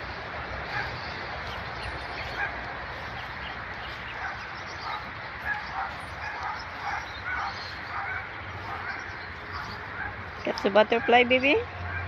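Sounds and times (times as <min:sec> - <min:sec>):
dogs barking and yipping: 0:00.0 - 0:12.0.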